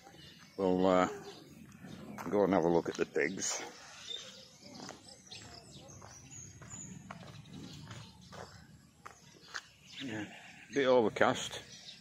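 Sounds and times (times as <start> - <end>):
footsteps on concrete: 0.0 - 10.0
high bird chirps: 0.0 - 12.0.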